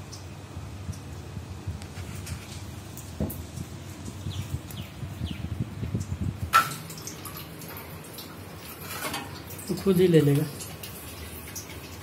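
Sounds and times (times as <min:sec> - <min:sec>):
water dripping from tap: 0:00.0 - 0:01.1, 0:02.9 - 0:12.0.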